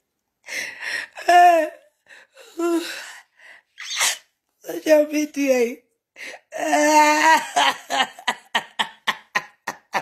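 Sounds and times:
person speaking: 4.6 - 5.9.

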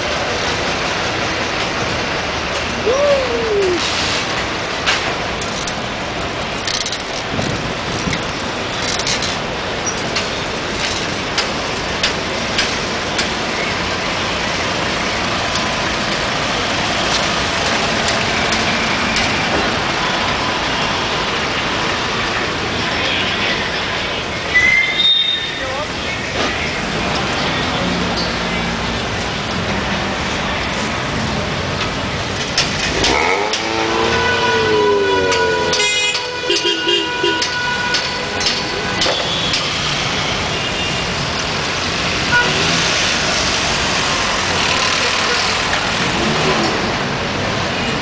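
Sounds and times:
bus engine running: 0.0 - 24.5
city traffic noise: 0.0 - 48.0
horn-like tone sagging in pitch: 33.1 - 36.5.

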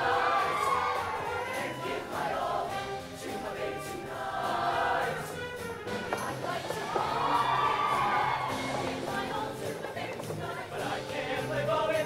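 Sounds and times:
choir singing: 0.0 - 12.0.

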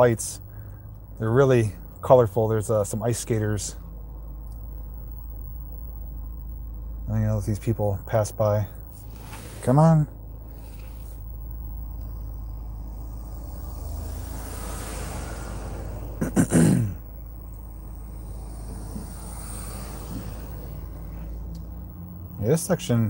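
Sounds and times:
voice: 0.0 - 0.4, 1.2 - 3.8, 7.1 - 8.8, 9.6 - 10.2, 22.4 - 23.0
idling car low hum: 0.0 - 23.0
car passing close by: 12.1 - 22.4.

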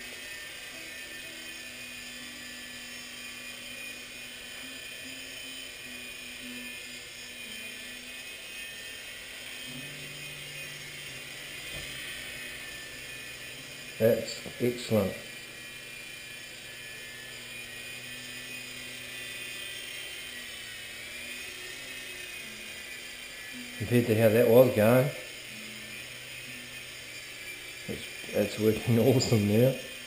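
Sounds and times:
lower tone: 0.0 - 30.0
micro helicopter rotors whining: 0.0 - 30.0.

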